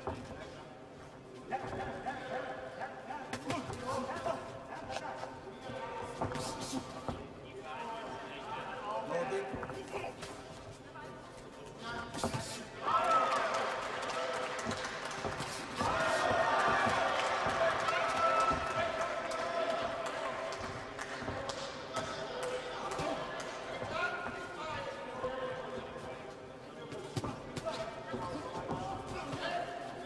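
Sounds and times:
footwork on ring canvas: 0.0s - 30.0s
crowd shouting: 15.5s - 20.4s.

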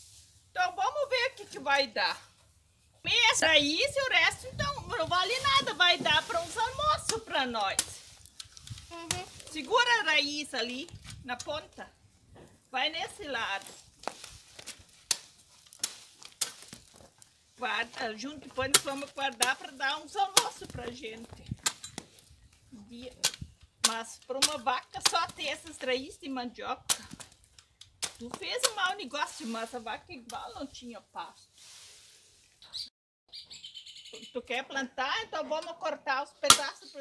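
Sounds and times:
plant rustling: 0.0s - 23.7s, 28.2s - 32.6s
blade chopping plant stem: 14.0s - 17.0s, 18.6s - 21.0s
birds chirping: 32.7s - 34.4s.

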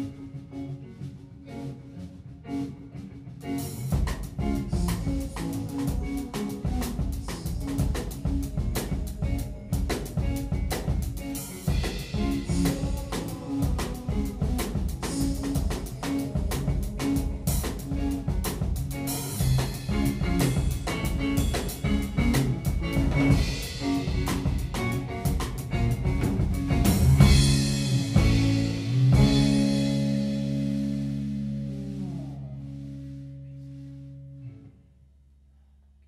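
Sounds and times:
guitar: 0.0s - 35.2s
drum kit beat: 3.4s - 32.3s.

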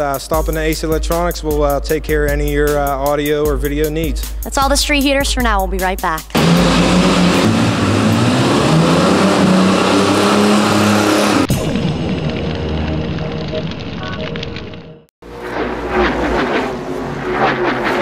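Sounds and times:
car engine revving: 6.3s - 13.4s.

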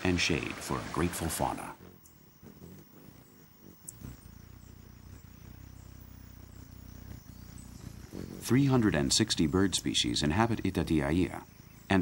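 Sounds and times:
hummingbird wings humming: 0.0s - 12.0s.

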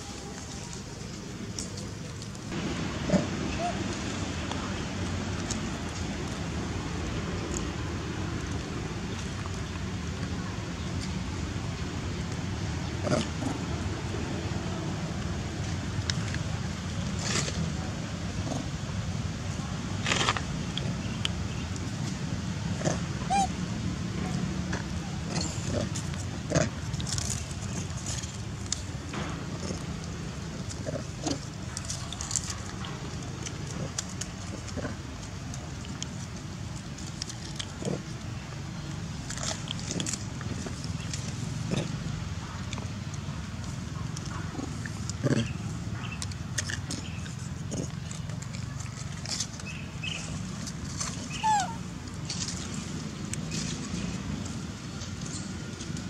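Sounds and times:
low background rumble: 0.0s - 56.0s
macaques giving short calls: 3.0s - 3.9s, 22.8s - 23.6s, 51.2s - 51.9s
baby monkey squealing: 23.2s - 23.5s, 51.3s - 51.8s
rustling: 24.8s - 56.0s.

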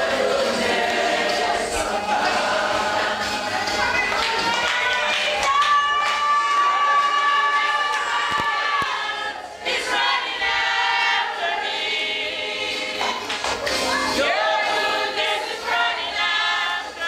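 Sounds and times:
congregation singing: 0.0s - 17.0s.

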